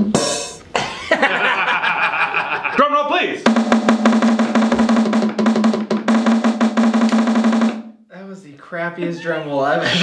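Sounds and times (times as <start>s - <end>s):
electronic drum pad roll: 3.4s - 7.9s.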